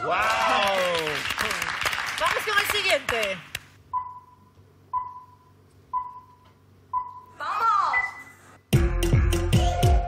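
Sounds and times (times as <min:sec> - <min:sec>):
people clapping: 0:00.0 - 0:03.8.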